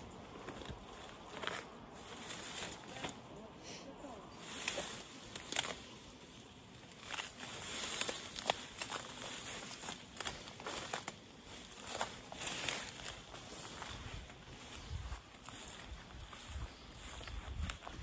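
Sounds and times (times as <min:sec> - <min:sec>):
footsteps through grass and undergrowth: 0:00.0 - 0:18.0.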